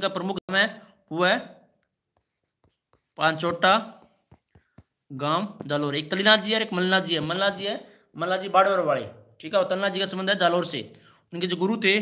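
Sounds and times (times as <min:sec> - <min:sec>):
stylus tapping on touchscreen: 0:01.8 - 0:07.5.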